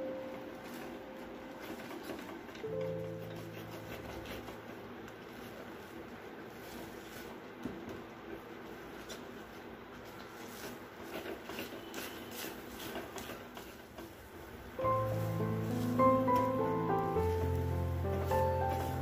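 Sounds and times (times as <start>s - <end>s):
sticky mixture squishing: 0.6s - 19.0s
background music: 14.8s - 19.0s.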